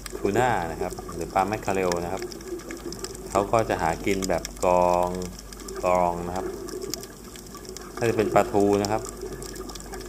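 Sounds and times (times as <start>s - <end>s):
faint crackle of clicks: 0.0s - 10.0s
man speaking: 0.2s - 2.2s, 3.4s - 6.5s, 8.0s - 9.0s.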